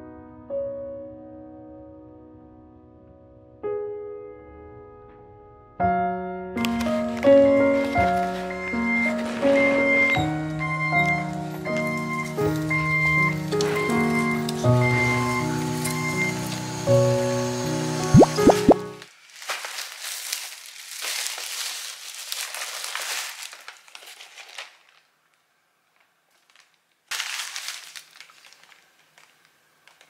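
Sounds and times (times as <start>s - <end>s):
plastic bag crinkling: 6.6s - 14.6s, 19.0s - 30.0s.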